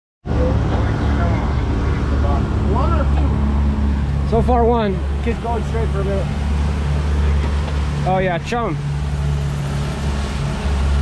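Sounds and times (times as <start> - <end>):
wind: 0.2 - 11.0
outboard motors droning: 0.3 - 11.0
rush of boat wake: 0.4 - 11.0.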